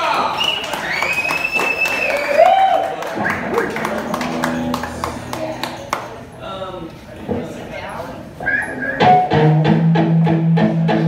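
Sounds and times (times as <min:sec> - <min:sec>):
electric guitar and bass notes ringing: 0:09.0 - 0:11.0.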